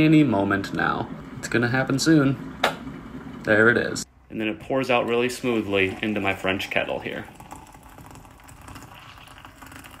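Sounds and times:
water pouring from kettle spout: 5.3 - 10.0.

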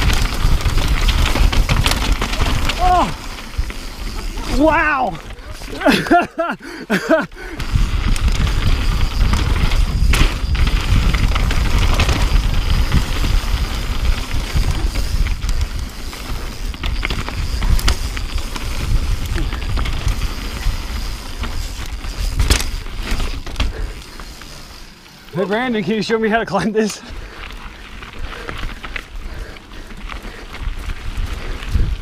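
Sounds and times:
wind buffeting microphone: 0.0 - 5.7, 7.4 - 24.0, 27.1 - 32.0
bike rattling over rock: 0.0 - 32.0.

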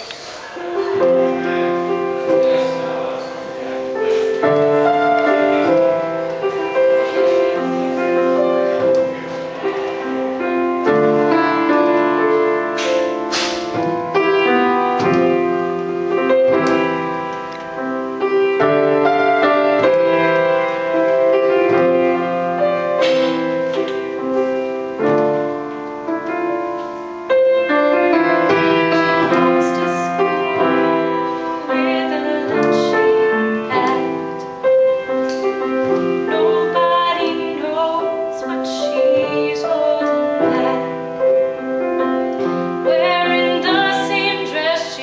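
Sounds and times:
grand piano chords: 0.0 - 45.0
woman singing: 28.4 - 34.6, 35.9 - 41.4, 42.8 - 45.0.

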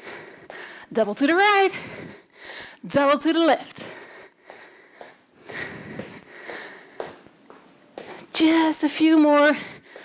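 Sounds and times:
woman breathing heavily: 0.0 - 8.4, 9.4 - 10.0
soft footfalls of trainers: 4.4 - 10.0.

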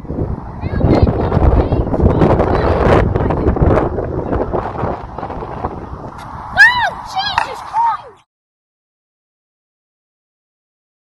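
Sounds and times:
wind on microphone: 0.0 - 8.2.

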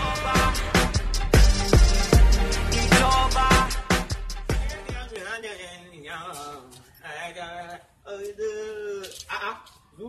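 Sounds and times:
man singing: 0.0 - 1.0, 2.6 - 6.4.

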